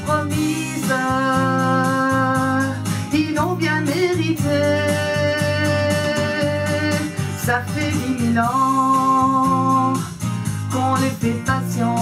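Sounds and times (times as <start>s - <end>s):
held keyboard chord with bass line: 0.0s - 12.0s.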